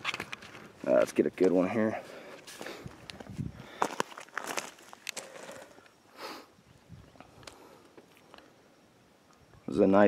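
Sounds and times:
footsteps on loose gravel: 0.0s - 5.8s.

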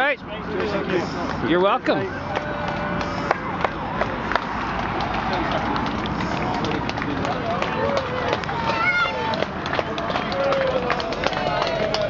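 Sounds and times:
onlookers calling and cheering: 0.0s - 12.0s.

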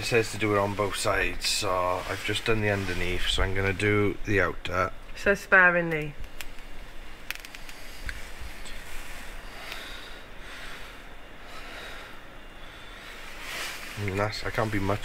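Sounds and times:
soft rubbing on metal: 0.0s - 4.2s, 13.1s - 15.0s
short hiss: 13.0s - 15.0s.

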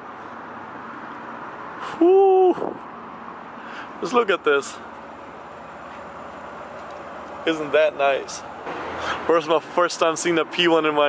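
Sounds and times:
city street background hiss and hum: 0.0s - 11.0s.

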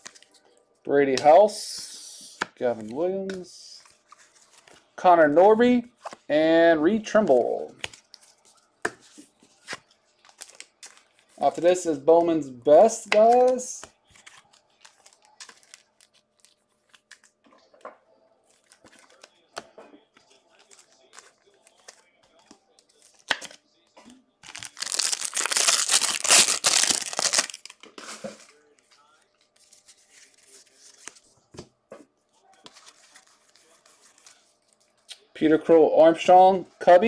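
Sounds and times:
cards and wrappers rustling: 2.2s - 6.3s, 7.7s - 17.8s, 18.4s - 23.6s, 24.4s - 31.6s, 32.5s - 35.0s
foil wrapper tearing: 24.4s - 27.8s.

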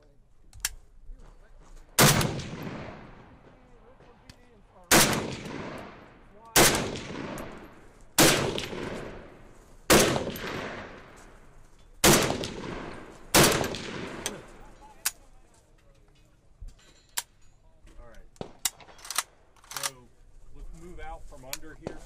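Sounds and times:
gunshots with echo: 2.0s - 3.4s, 4.9s - 11.2s, 12.0s - 14.6s.

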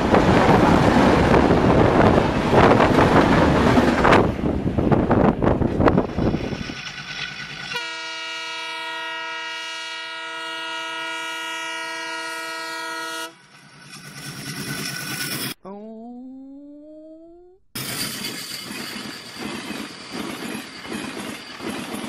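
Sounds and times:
train rushing past: 0.0s - 7.8s
locomotive air horn blast: 7.7s - 13.4s.

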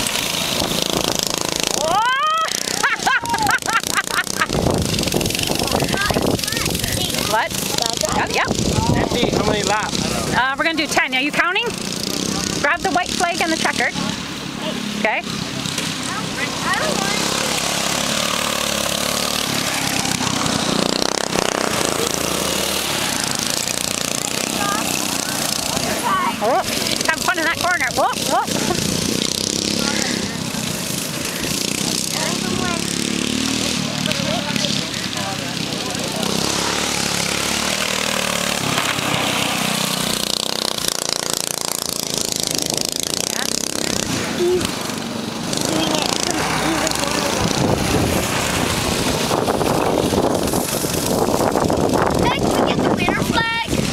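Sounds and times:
go-kart engine running: 0.0s - 53.9s.

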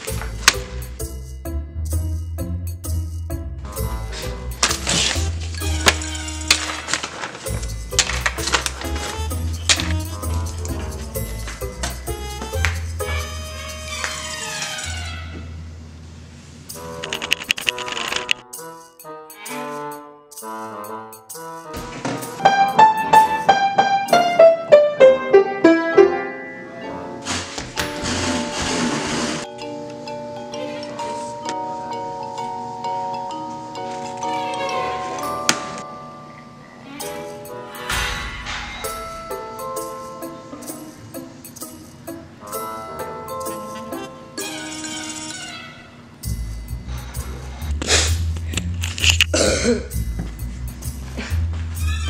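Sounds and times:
piano melody: 0.0s - 14.3s, 18.0s - 44.9s.

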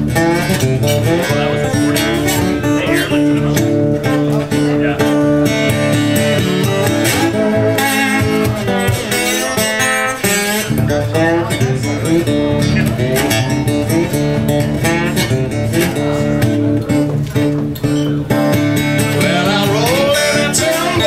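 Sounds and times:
acoustic slide guitar blues: 0.0s - 21.0s.

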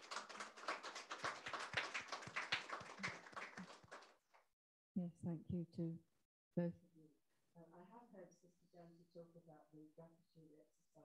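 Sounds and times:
audience applauding: 0.0s - 4.2s.

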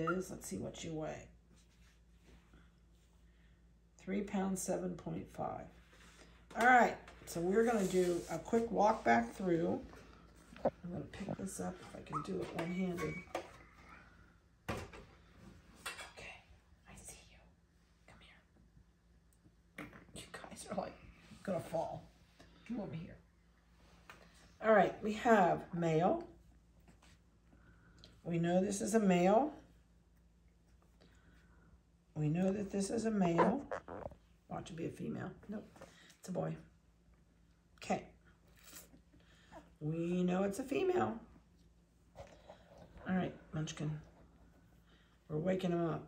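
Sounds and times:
person saying a word: 33.3s - 34.1s.

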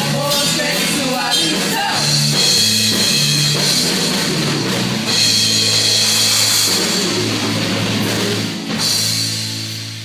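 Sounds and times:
bass guitar: 0.0s - 10.0s
drum kit with ringing cymbals: 0.0s - 10.0s
electric guitars: 0.0s - 10.0s.

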